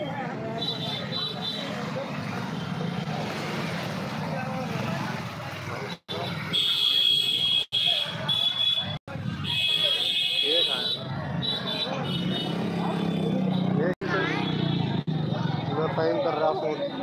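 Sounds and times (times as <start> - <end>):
crowd chatter: 0.0 - 17.0
motorbikes passing: 0.0 - 17.0.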